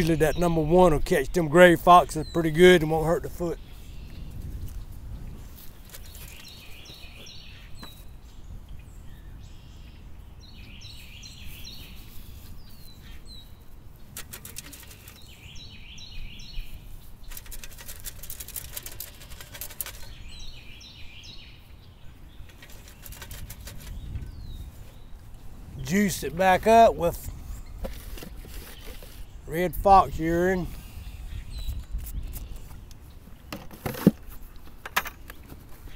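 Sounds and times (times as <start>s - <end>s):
low wind rumble: 0.0s - 13.9s, 20.0s - 33.4s
songbird singing: 0.0s - 35.9s
dirt sifted through a screen: 17.0s - 20.2s, 25.8s - 30.7s.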